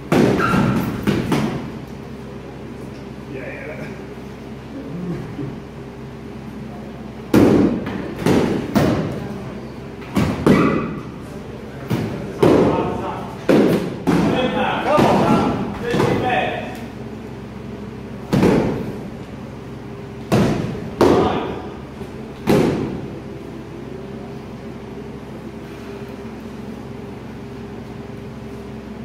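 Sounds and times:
padded weapons thumping shields: 13.5 - 16.3.

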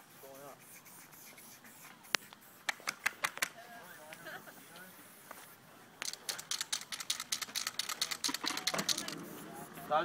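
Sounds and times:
spray can rattling when shaken: 6.0 - 9.4.

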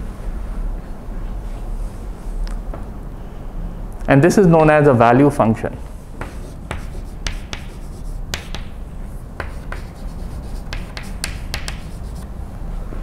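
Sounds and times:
chalk tapping on blackboard: 5.8 - 8.8, 9.4 - 12.3.

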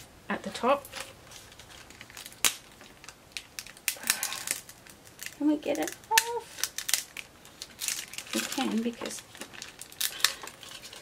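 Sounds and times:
paper crackle: 0.8 - 11.0.

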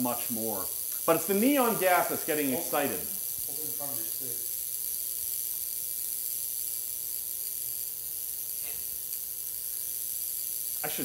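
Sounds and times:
tesla coil buzzing: 0.0 - 11.0.

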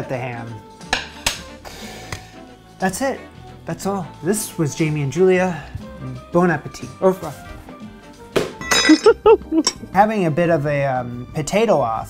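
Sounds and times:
glass clink: 8.6 - 9.8
man laughing: 8.9 - 9.7.

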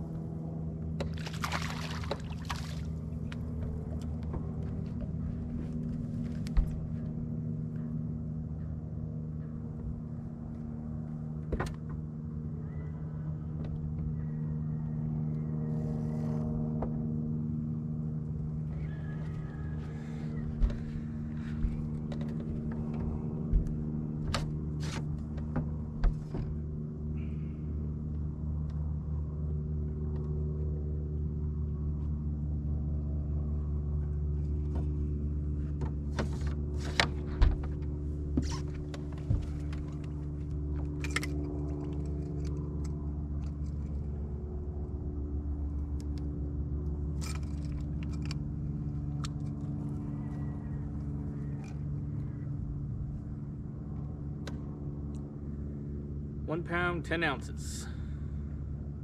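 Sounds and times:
boat motor humming: 0.0 - 59.0.

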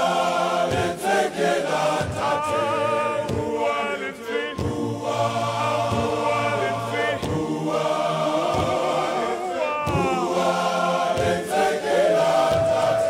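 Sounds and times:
men's choir singing gospel: 0.0 - 13.0
solo male voice singing: 1.6 - 4.8, 8.4 - 10.6.

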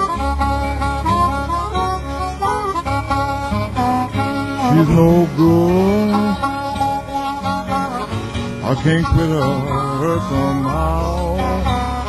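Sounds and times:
fingerpicked acoustic guitar: 0.0 - 12.0
harmonica sliding notes: 0.0 - 12.0.

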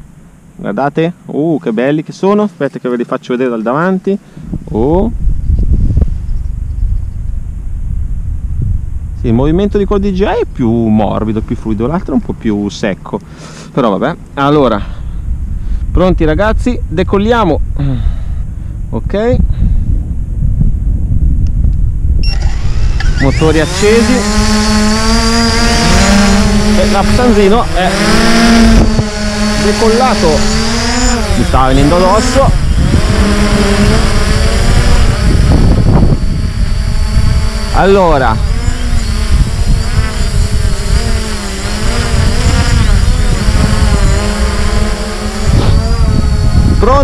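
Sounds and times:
quadcopter motors whining: 1.8 - 20.1, 21.5 - 47.0
low rumble: 4.4 - 13.3, 13.9 - 38.5.

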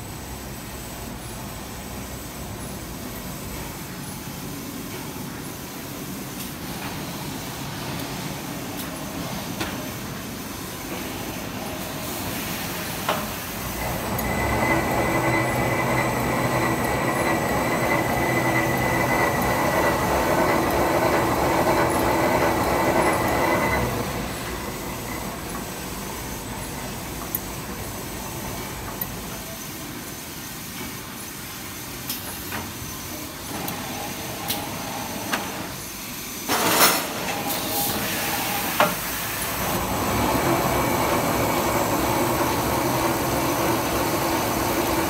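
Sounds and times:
machine rollers whirring: 0.4 - 45.0.

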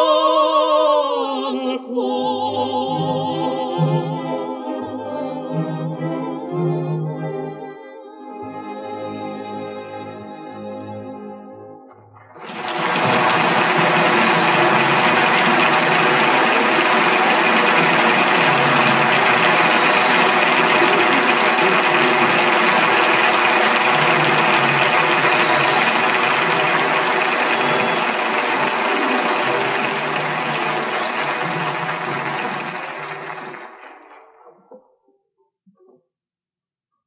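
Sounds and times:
large audience applauding: 12.2 - 34.6.

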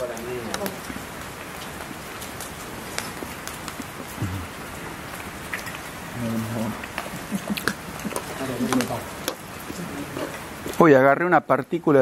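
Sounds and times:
wood fire crackling: 0.0 - 12.0.

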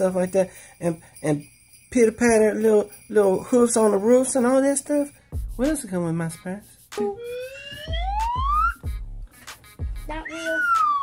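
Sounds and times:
music with deep bass and beat: 5.1 - 11.0
siren-like whistling tone: 7.0 - 8.8, 10.2 - 11.0.

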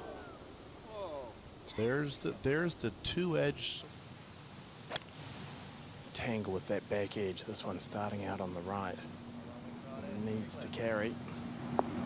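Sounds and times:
faint background hiss: 0.0 - 12.0
golf club striking ball: 4.9 - 5.2.

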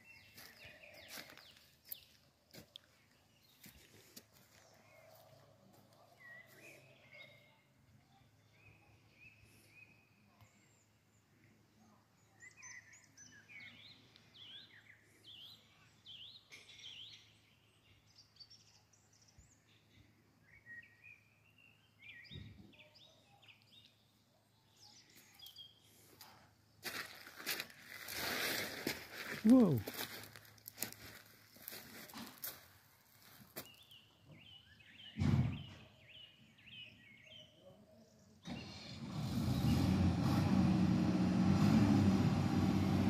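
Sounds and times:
small birds chirping: 0.0 - 38.9.

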